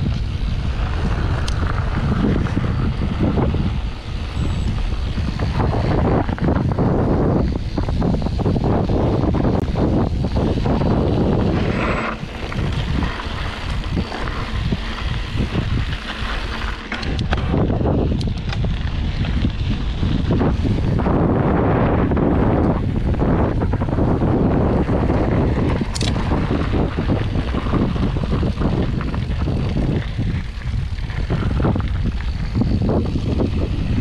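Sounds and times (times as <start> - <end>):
bike tyres on gravel: 0.0 - 34.0
wind buffeting microphone: 0.0 - 34.0.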